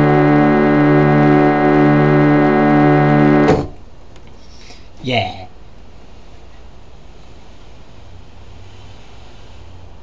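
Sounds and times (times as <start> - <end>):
electronic keyboard chord: 0.0 - 3.8.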